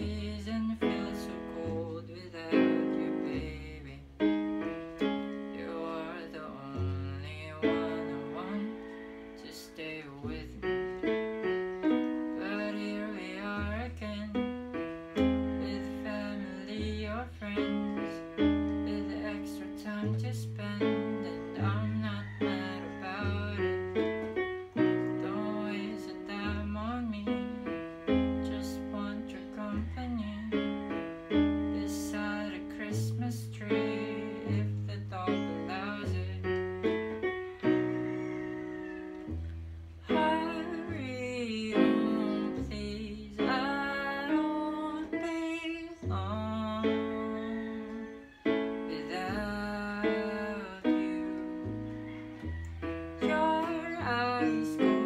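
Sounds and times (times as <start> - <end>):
electronic keyboard playing: 0.0 - 55.0.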